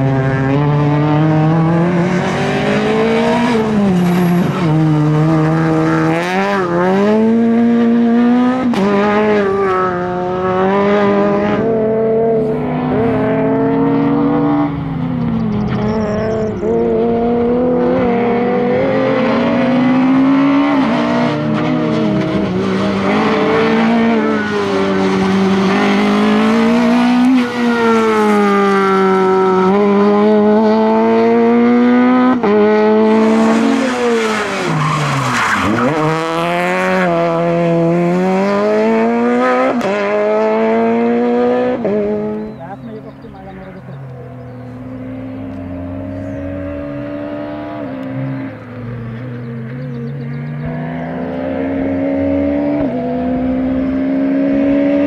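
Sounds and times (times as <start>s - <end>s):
rally car engine revving hard: 0.0s - 43.2s, 44.4s - 55.0s.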